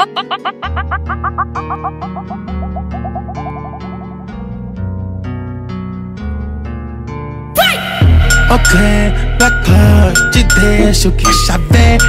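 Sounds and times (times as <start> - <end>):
funk beat with deep bass: 0.0 - 4.6
short rising high notes: 0.0 - 4.7.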